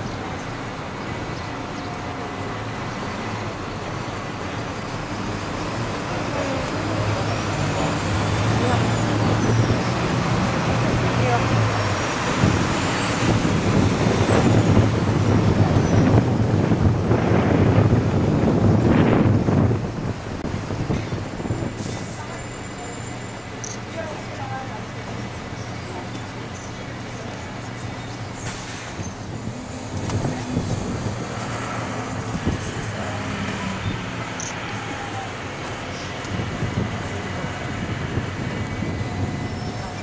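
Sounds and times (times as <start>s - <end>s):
bus engine running: 0.0s - 40.0s
city road traffic: 0.0s - 40.0s.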